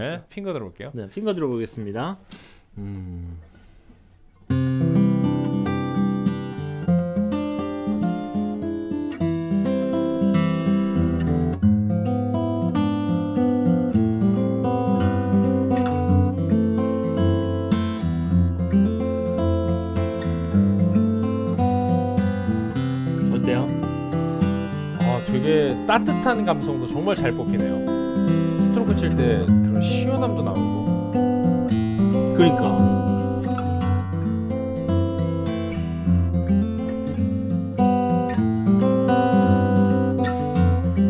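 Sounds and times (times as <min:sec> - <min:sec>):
fingerstyle acoustic guitar: 0:03.1 - 0:41.0.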